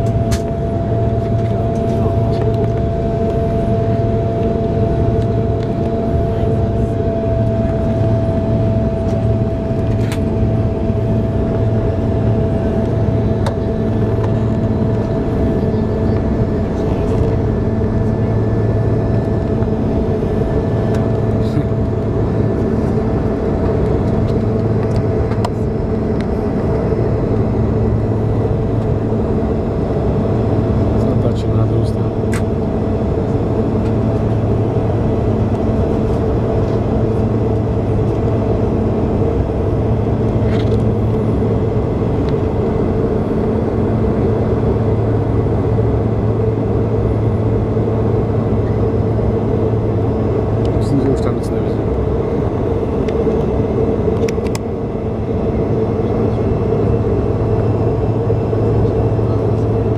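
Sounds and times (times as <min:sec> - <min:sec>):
jet engine drone in cabin: 0:00.0 - 0:59.9.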